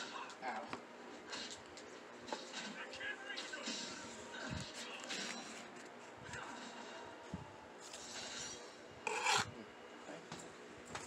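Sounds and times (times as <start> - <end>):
knife scraping plastic packaging: 9.1 - 9.5.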